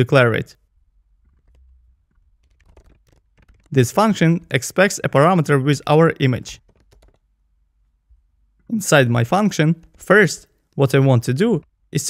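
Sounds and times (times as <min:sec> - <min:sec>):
typing on computer keyboard: 0:01.2 - 0:04.3, 0:06.5 - 0:07.3, 0:09.8 - 0:10.1.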